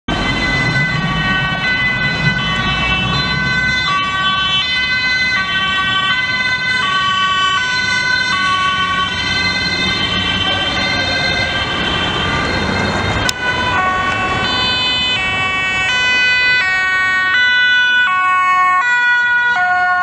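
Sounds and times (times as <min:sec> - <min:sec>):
road traffic rumble: 0:00.1 - 0:20.0
two-tone ambulance siren: 0:00.1 - 0:20.0.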